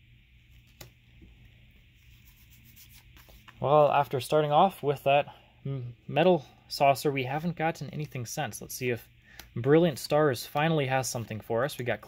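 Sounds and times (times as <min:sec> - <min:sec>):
trading cards rubbing in hands: 0:00.4 - 0:04.0.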